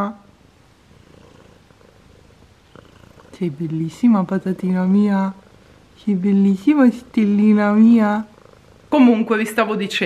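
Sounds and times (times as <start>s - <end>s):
cat purring: 0.0s - 9.7s.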